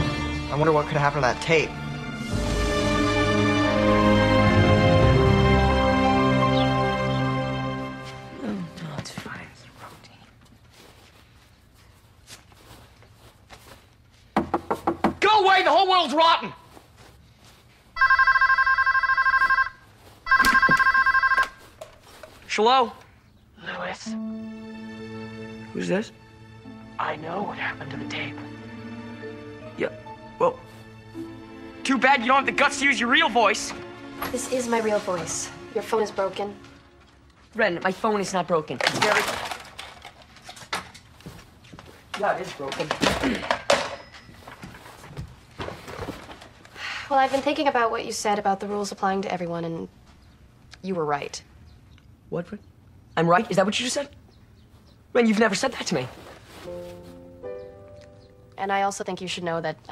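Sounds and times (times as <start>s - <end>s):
electronic telephone ringing: 18.0s - 21.6s
person clearing throat: 43.1s - 43.6s.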